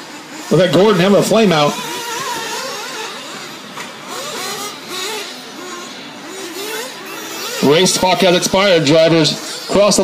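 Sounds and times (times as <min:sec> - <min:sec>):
model car engines whining: 0:00.0 - 0:10.0.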